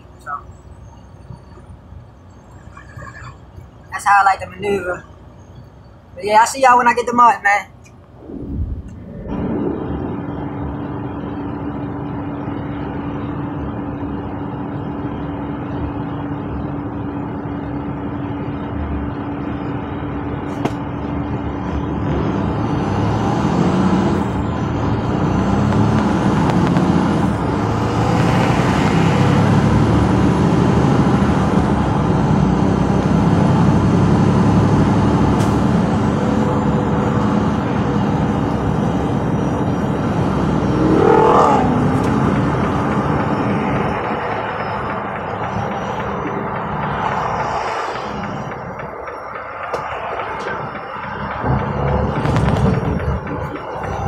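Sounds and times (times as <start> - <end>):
road noise: 0.0 - 54.0
truck engine: 0.0 - 54.0.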